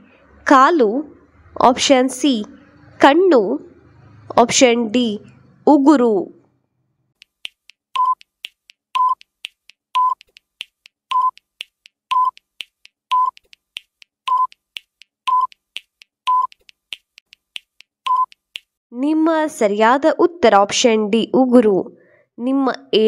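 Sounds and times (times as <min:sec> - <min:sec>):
timer ticks: 0:07.2 - 0:18.7.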